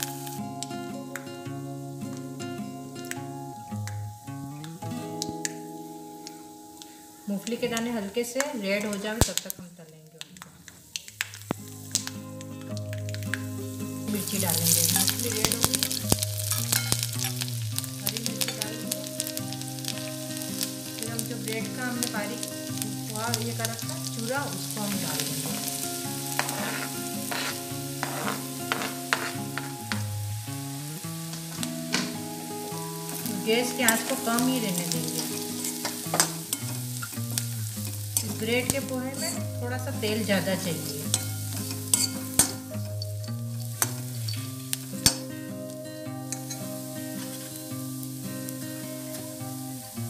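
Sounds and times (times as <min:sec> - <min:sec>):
bread sizzling in hot oil: 0:00.0 - 0:00.9, 0:01.5 - 0:50.0
background music: 0:00.0 - 0:09.0, 0:11.2 - 0:50.0
spatula scraping metal pan: 0:26.3 - 0:29.8, 0:41.1 - 0:42.6.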